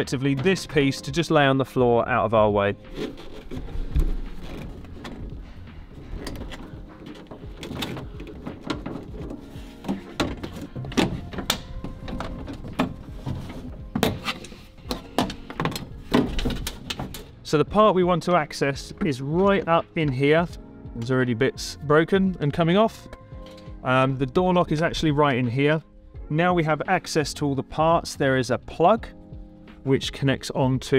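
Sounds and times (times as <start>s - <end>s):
clicks and rattles of plastic and metal: 2.9s - 17.3s.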